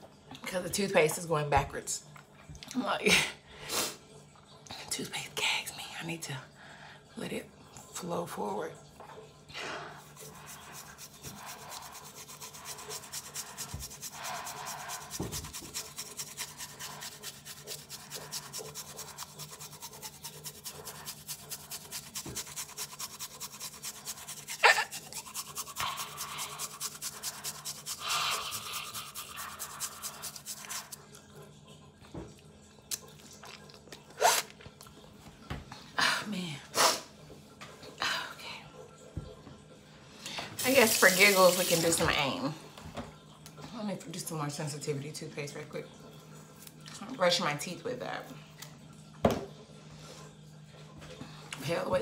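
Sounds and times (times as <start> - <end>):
toothbrush scrubbing tongue: 9.6 - 31.3, 40.6 - 42.0.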